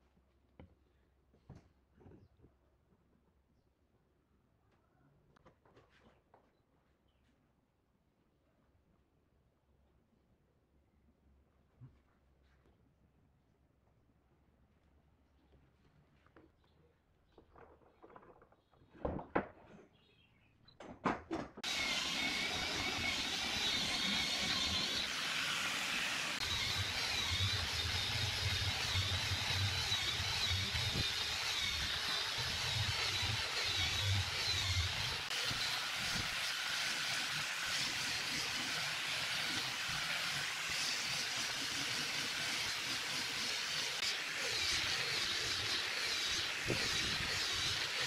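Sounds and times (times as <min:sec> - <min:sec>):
angle grinder sanding wood: 0:21.6 - 0:48.0.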